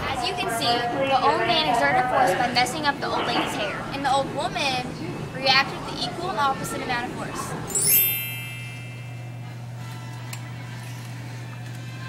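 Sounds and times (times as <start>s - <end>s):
bell-like chime: 7.7s - 9.7s
low steady hum: 7.7s - 11.7s.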